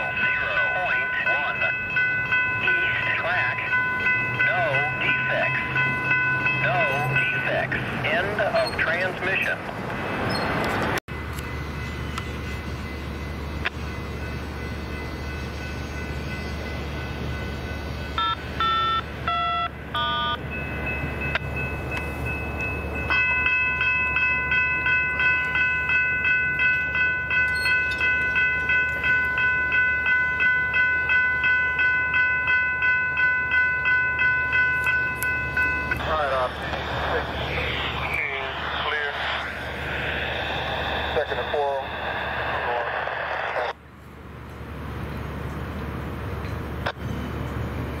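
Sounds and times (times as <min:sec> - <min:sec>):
crossing warning bells ringing: 0:00.0 - 0:48.0.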